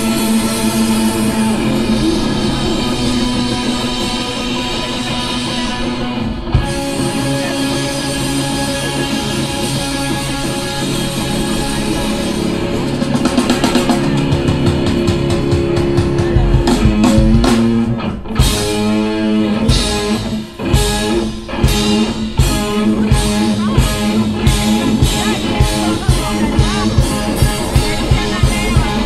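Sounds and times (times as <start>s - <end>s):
drum kit fast strokes: 0.0s - 29.0s
electric guitar chords: 0.0s - 29.0s.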